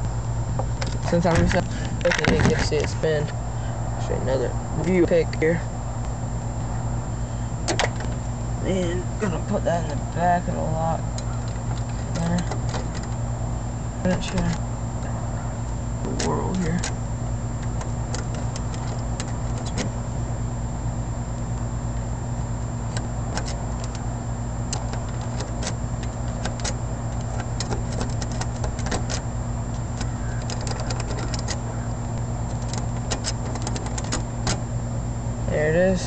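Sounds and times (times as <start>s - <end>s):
steady low hum: 0.0s - 36.0s
lock pick ticking and scraping: 11.0s - 13.2s, 16.1s - 20.0s, 22.9s - 34.7s.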